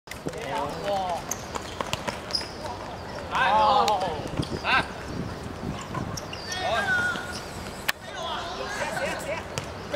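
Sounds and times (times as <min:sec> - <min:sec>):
boy shouting: 0:06.6 - 0:07.3.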